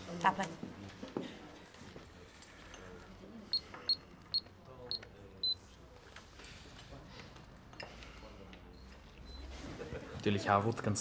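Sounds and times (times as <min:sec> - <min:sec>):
payment terminal beeping: 0:03.5 - 0:05.6.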